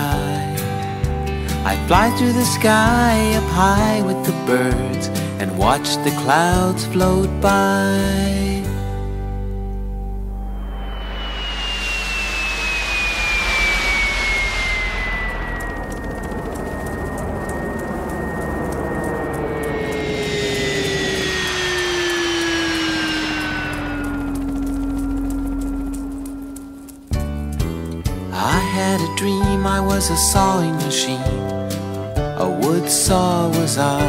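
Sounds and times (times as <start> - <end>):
jet airplane flying by: 10.3 - 27.8.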